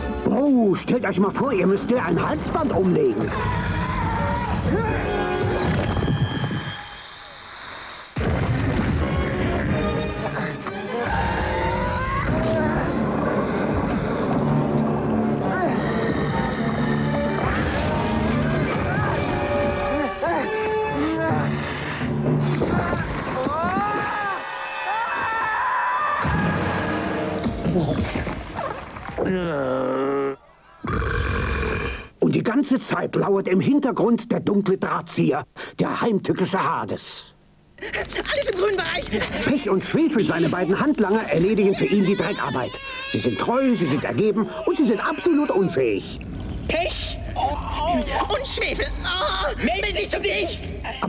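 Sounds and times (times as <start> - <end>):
long airy hiss: 6.9 - 8.2
monster roar: 29.2 - 32.1.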